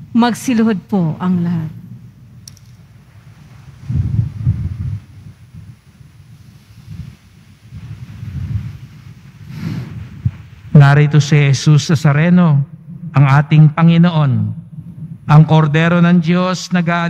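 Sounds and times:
muffled rumbling and shuffling: 0.5s - 17.0s.

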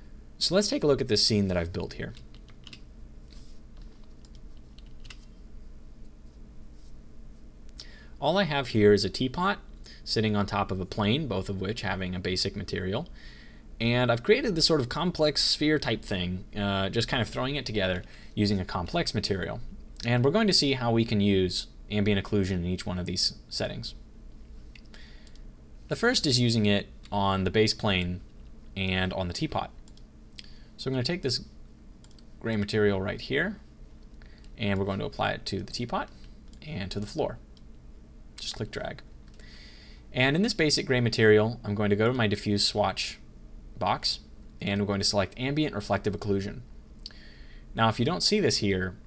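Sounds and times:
steady low hum: 0.0s - 49.0s
computer keyboard clicks: 2.1s - 2.8s
computer mouse clicks: 2.1s - 2.9s, 3.8s - 5.4s, 32.0s - 32.3s.

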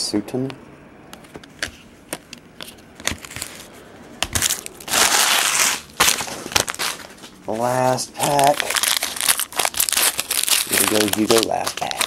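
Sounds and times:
cards being shuffled: 1.2s - 3.7s, 4.3s - 12.0s
foil wrapper crinkling: 4.4s - 12.0s.

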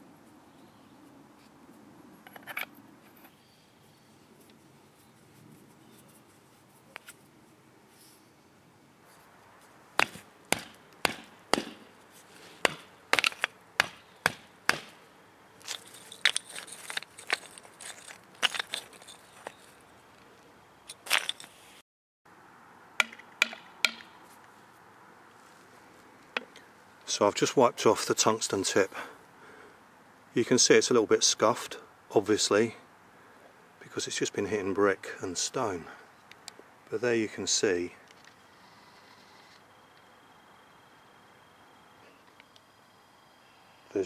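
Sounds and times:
scraping on stone: 15.6s - 19.8s
metal baton knocking on stone: 23.0s - 24.1s.

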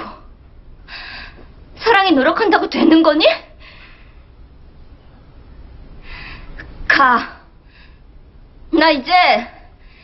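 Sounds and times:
woman speaking: 1.8s - 3.6s, 6.8s - 7.5s, 8.7s - 9.7s.

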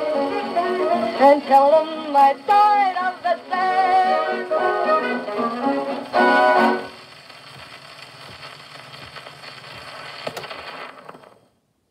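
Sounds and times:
record crackle and hiss: 0.0s - 11.9s
sharp record click: 6.9s - 11.4s.

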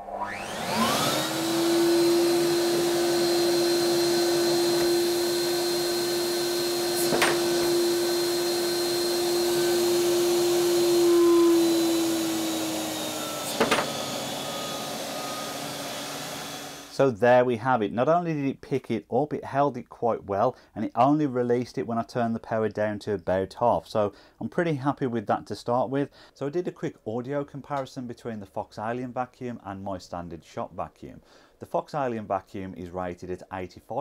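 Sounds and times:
vacuum motor hum and whine: 0.0s - 16.9s
air rushing through hose: 0.7s - 16.7s.

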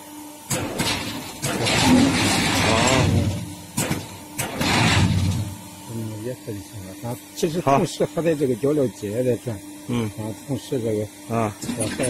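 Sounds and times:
loud bursts of machine noise: 0.0s - 12.0s
machine motor humming: 0.0s - 12.0s.

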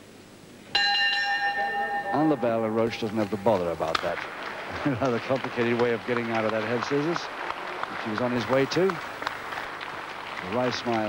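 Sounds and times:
ring bell struck: 0.7s - 3.1s.

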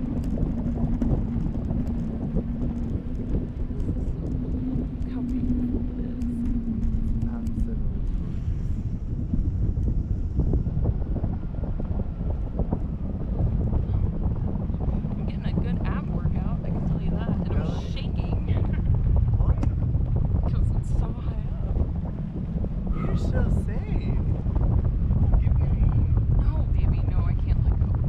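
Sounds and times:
steady low hum: 0.0s - 28.0s
wind buffeting microphone: 0.0s - 28.0s.

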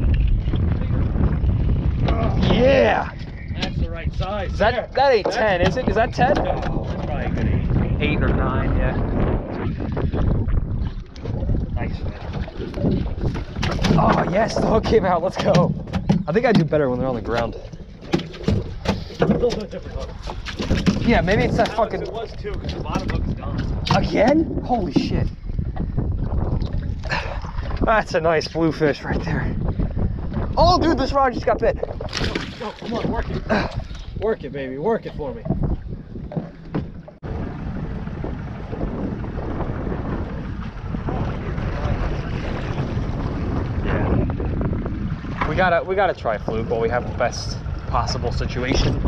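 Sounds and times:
wind buffeting microphone: 0.0s - 49.0s
fish flopping on boat deck: 10.3s - 25.8s.

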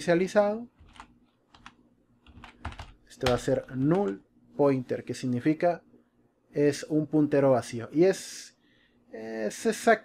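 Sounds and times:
computer keyboard typing: 0.7s - 4.2s.

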